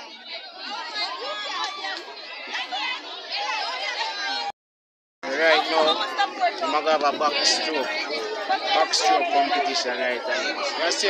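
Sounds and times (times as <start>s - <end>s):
chattering voices: 0.0s - 4.5s, 5.2s - 11.0s.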